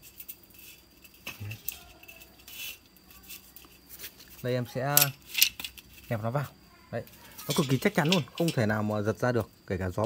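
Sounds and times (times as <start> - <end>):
light metallic clicks and scrapes: 0.0 - 6.2, 7.1 - 8.7.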